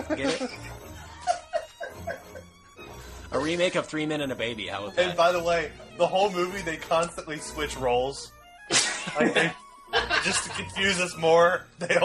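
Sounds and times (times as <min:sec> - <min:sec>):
laughter: 0:00.0 - 0:02.4, 0:08.7 - 0:10.7, 0:11.8 - 0:12.0
quiet background music: 0:00.0 - 0:12.0.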